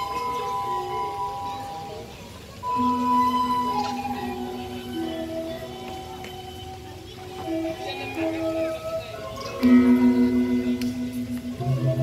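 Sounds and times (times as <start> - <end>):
gamelan music ringing notes: 0.0 - 12.0.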